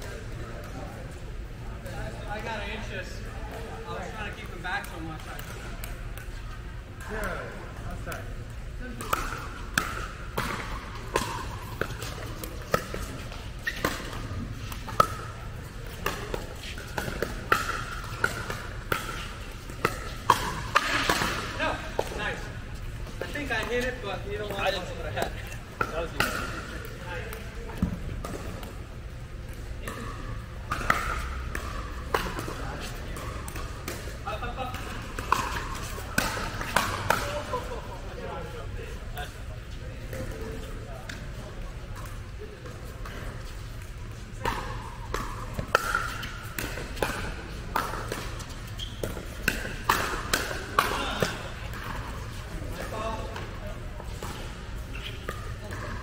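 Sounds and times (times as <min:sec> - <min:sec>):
ball bouncing on court: 0:03.5 - 0:22.4, 0:23.0 - 0:28.9, 0:29.5 - 0:37.8, 0:41.9 - 0:56.0
paddles hitting plastic ball: 0:04.3 - 0:22.4, 0:23.0 - 0:28.8, 0:29.4 - 0:37.7, 0:42.6 - 0:53.5.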